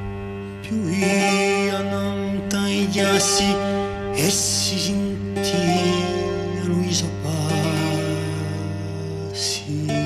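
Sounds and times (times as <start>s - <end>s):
male vocal ensemble singing: 0.6s - 10.0s.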